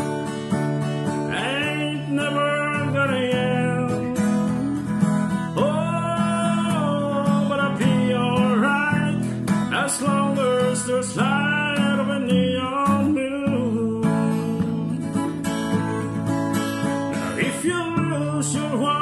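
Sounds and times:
strummed acoustic guitar: 0.0s - 19.0s.

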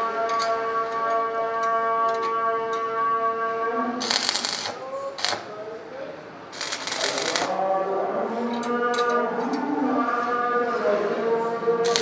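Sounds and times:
arc welding crackle: 4.0s - 5.6s, 6.5s - 7.6s.

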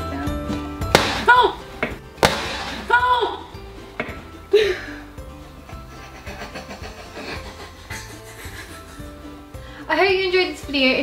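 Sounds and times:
background music: 0.0s - 11.0s
balloon bursting bang: 0.9s - 3.0s
person crying out: 2.9s - 3.5s.

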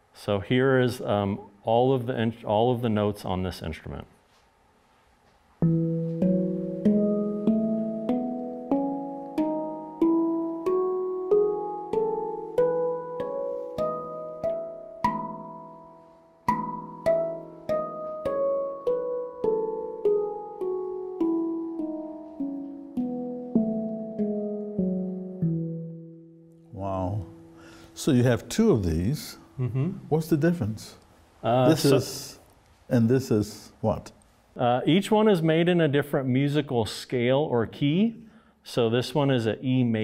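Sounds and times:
handpan notes: 5.6s - 27.8s.

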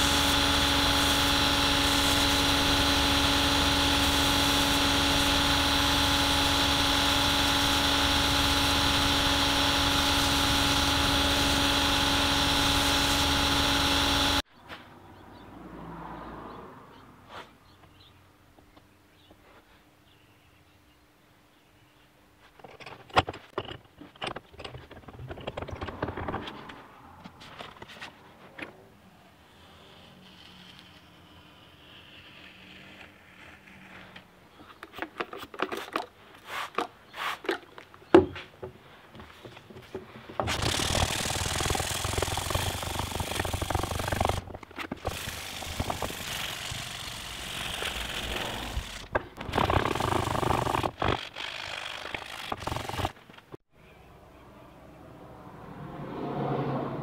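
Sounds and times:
sandpaper scraping: 0.0s - 14.4s, 29.5s - 34.3s, 35.7s - 37.6s, 40.4s - 53.3s.

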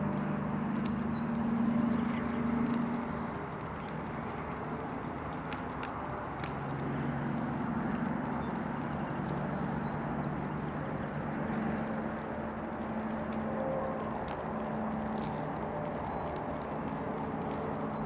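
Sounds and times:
horse hoofbeats on dirt: 0.0s - 18.0s.

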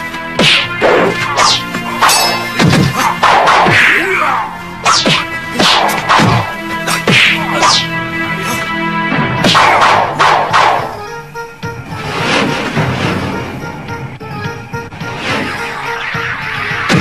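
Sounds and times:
background music with sustained tones: 0.0s - 17.0s
whacking blows: 0.3s - 11.1s
whooshing weapon swings: 0.4s - 3.8s, 4.8s - 7.9s.

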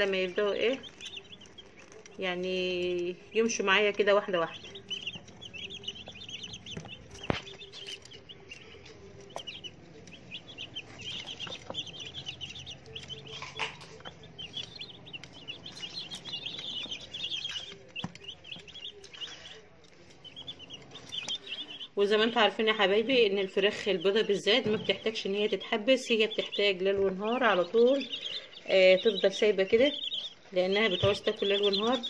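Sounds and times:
chicks peeping: 0.0s - 32.0s.

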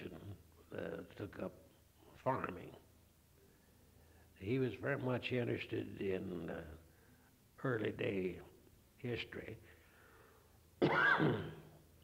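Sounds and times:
man clearing his throat: 10.8s - 11.8s.

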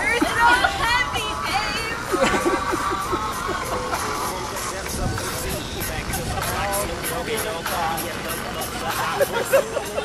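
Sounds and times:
outdoor background noise: 0.0s - 10.0s
people talking indistinctly: 0.0s - 10.0s.

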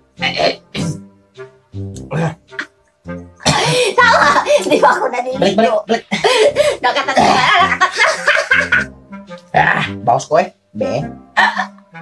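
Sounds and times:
faint background music: 0.0s - 12.0s
person coughing: 3.4s - 4.7s, 6.0s - 8.8s.

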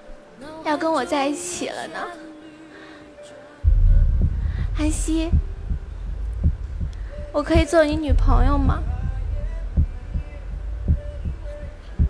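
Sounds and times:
low steady drone: 3.6s - 12.0s
heartbeat double thump: 3.7s - 12.0s.

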